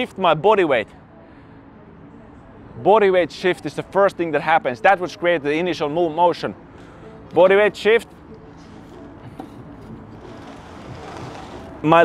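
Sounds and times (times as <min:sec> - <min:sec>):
metal sled scraping on rubber floor: 0:10.1 - 0:12.0.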